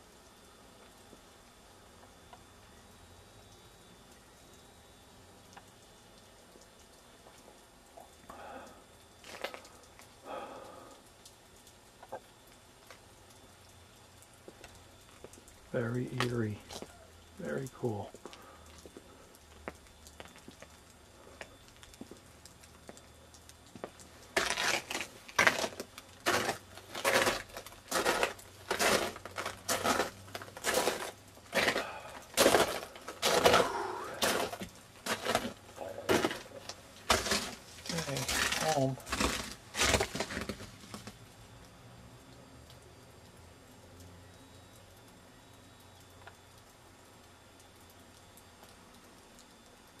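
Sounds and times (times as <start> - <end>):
footsteps crunching on icy snow: 9.2 - 10.1, 23.7 - 41.2.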